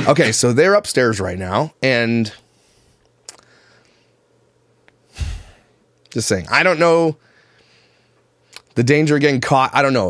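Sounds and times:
man sighing: 5.1s - 5.7s.

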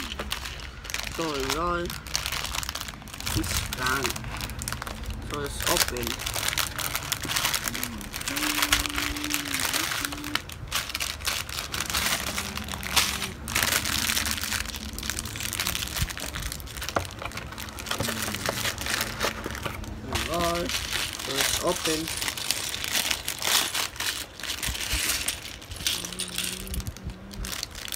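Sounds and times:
plastic bag crinkling: 0.0s - 27.9s
plastic bricks clicking and rattling: 5.6s - 27.9s.

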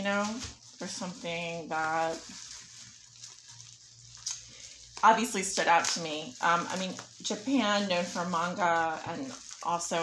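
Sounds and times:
bubble wrap crinkling: 0.0s - 10.0s.

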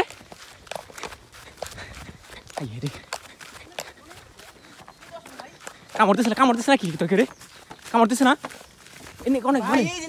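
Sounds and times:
footsteps through grass: 0.0s - 10.0s.

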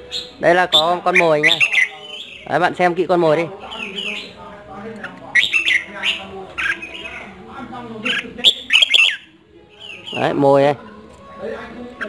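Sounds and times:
bird calling in sweeping notes: 0.0s - 2.6s, 5.3s - 7.3s, 8.1s - 10.4s.

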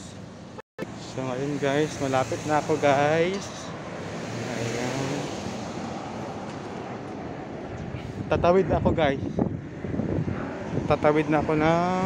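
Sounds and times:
road traffic: 0.0s - 12.0s
wind on microphone: 4.0s - 12.0s.

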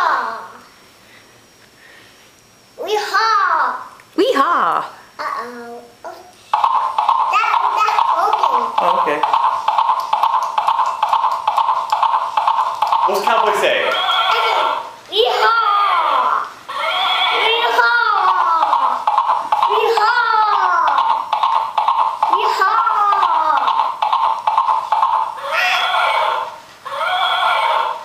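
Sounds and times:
recorded horse neighs: 13.2s - 15.0s, 16.7s - 17.7s, 25.4s - 28.0s.

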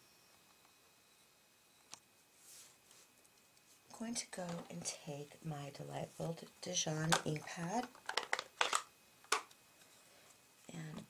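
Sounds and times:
plastic case crackling and clicking: 7.0s - 9.6s.

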